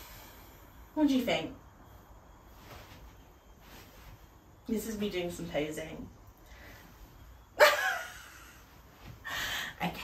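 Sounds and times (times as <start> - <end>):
woman laughing loudly: 7.6 - 8.7.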